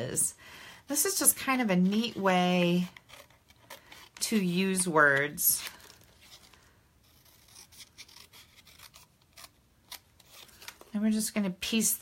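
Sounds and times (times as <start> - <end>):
scissors snipping paper: 7.2 - 10.9.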